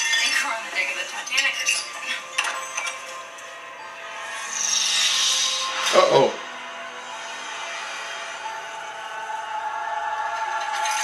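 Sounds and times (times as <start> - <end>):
dark background score: 0.0 - 11.0
hissing whoosh: 4.2 - 8.6.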